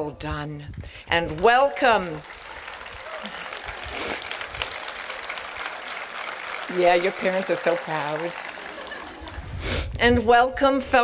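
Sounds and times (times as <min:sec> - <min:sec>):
audience applauding: 0:01.2 - 0:09.8.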